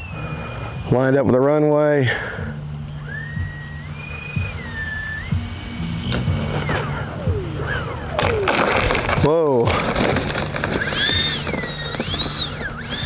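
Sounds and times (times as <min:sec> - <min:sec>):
model jet ducted fans whining: 0:00.0 - 0:13.0.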